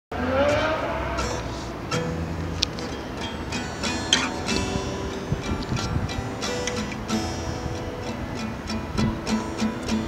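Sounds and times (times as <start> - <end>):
acoustic guitar strumming: 0.1 - 10.0.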